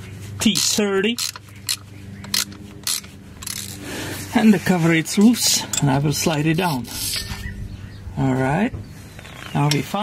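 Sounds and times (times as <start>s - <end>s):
steady low hum: 0.0s - 9.3s
bit scraping bolt: 0.4s - 3.8s, 5.1s - 7.5s.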